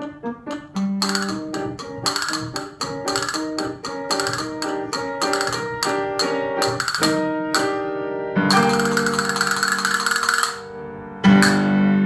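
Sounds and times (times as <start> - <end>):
held accompanying chord: 0.0 - 12.0
castanets rapid roll: 0.6 - 7.8, 8.5 - 10.7, 11.4 - 11.7.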